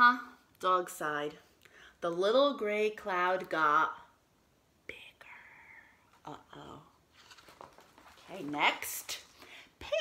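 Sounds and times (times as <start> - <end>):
woman whispering: 4.8 - 6.9.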